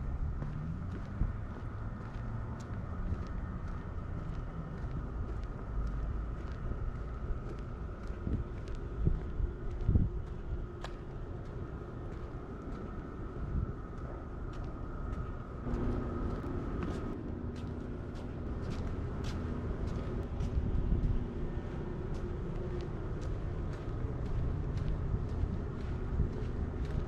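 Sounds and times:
car traffic rumble: 0.0 - 27.0
vehicle engine hum: 0.0 - 27.0
wind on microphone: 0.0 - 27.0
footstep clicks: 0.3 - 27.0.

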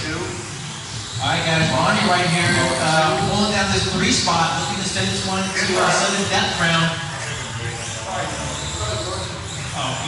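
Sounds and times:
indistinct voices in a hall: 0.0 - 10.0
steady low hum: 0.0 - 10.0
commentary: 1.2 - 10.0.

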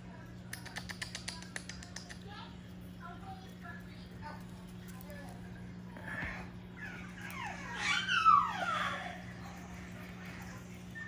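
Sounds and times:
steady low hum: 0.0 - 11.0
puppy whining: 6.0 - 11.0.

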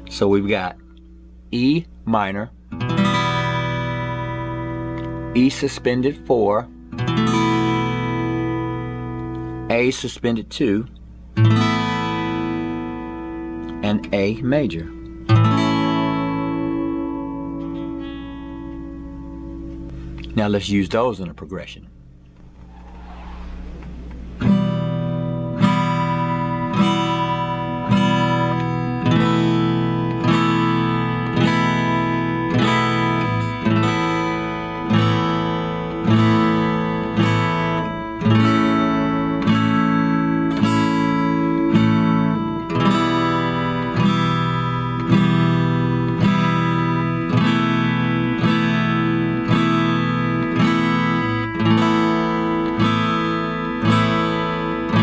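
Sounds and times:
acoustic guitar strumming: 0.0 - 20.7, 23.4 - 55.0.

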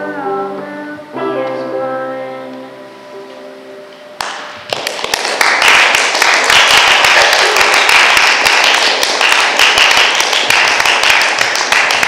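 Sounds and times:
audience applauding: 4.2 - 12.0.

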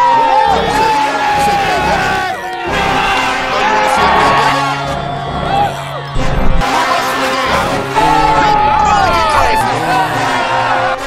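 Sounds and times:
background music with bass: 0.0 - 11.0
men shouting and cheering: 0.0 - 11.0.

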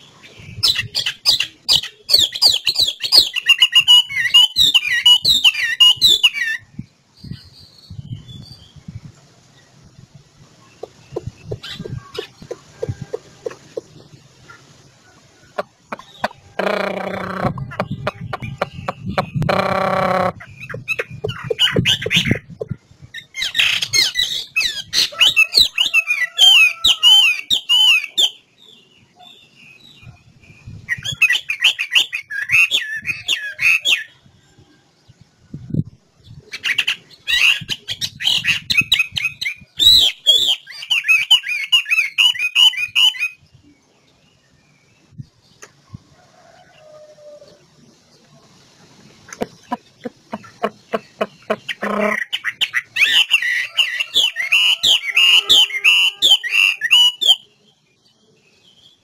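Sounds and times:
bird singing whistled phrases: 23.2 - 28.4, 36.6 - 43.4, 52.3 - 57.5.

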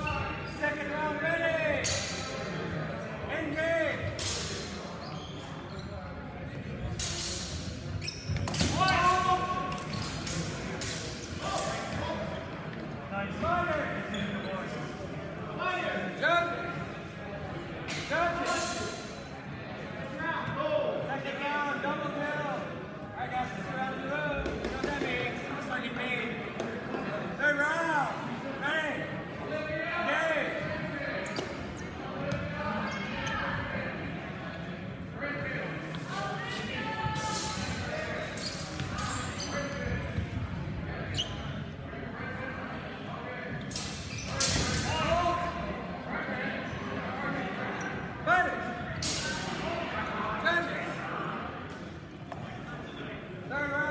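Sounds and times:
shoe squeak: 0.0 - 0.7, 5.0 - 6.3, 7.2 - 10.5, 32.8 - 33.4, 36.4 - 40.3, 41.0 - 41.8, 43.7 - 44.8
echoing crowd chatter: 0.0 - 53.9
murmur of voices in hall: 0.0 - 53.9
shoes squeaking on hardwood floor: 5.0 - 6.2, 7.9 - 10.4.

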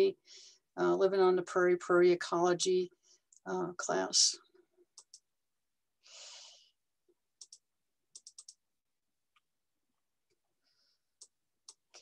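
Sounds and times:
computer mouse clicks: 4.9 - 5.3, 7.4 - 8.6, 11.2 - 12.0.

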